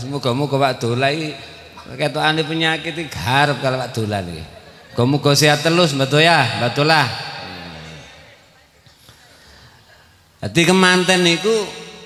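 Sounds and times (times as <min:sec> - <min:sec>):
man talking: 0:00.0 - 0:08.1, 0:10.4 - 0:12.0.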